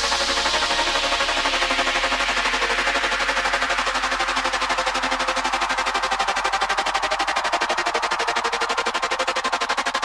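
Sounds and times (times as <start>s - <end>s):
stuttering synth electronic music: 0.0s - 10.0s.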